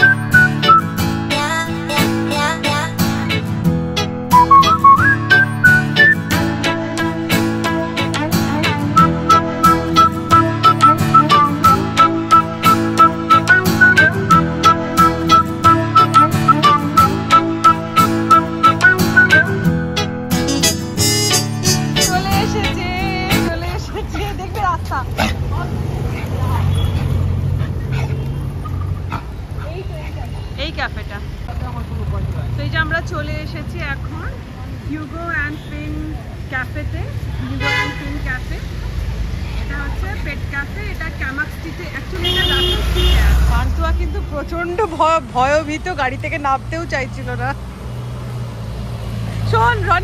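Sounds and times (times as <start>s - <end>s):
road noise: 0.0s - 50.0s
vehicle engine humming: 0.0s - 50.0s
voices talking: 21.6s - 27.0s.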